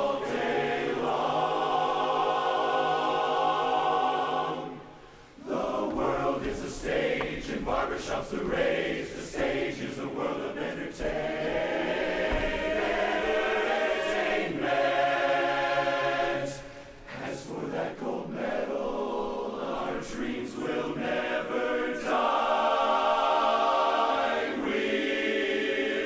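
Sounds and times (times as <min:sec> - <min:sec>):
men's chorus singing a cappella: 0:00.0 - 0:26.0.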